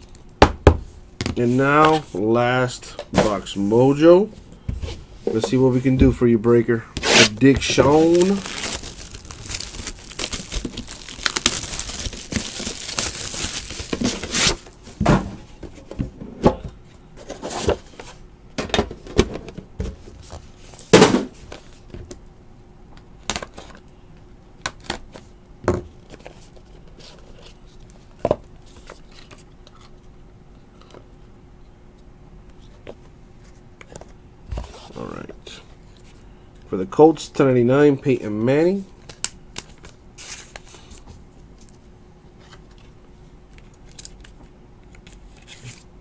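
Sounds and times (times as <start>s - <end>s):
wrapper tearing and crinkling: 7.0s - 14.6s.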